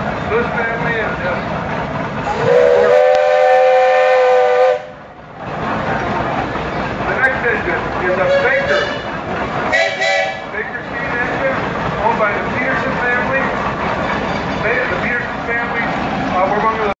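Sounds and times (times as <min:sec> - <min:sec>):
people talking: 0:00.3 - 0:01.5, 0:07.0 - 0:09.1, 0:10.4 - 0:13.9, 0:14.5 - 0:17.0
steam whistle toot: 0:02.3 - 0:05.0, 0:09.7 - 0:10.4.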